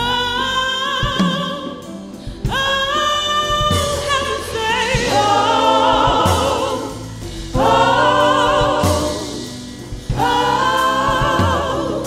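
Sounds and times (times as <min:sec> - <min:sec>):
instrumental backing: 0:00.0 - 0:12.0
group singing long notes: 0:04.7 - 0:12.0.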